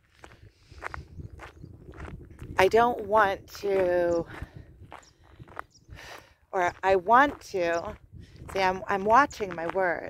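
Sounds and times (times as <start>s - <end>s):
footsteps on dirt path: 0.0s - 10.0s
wind noise on microphone: 0.0s - 10.0s.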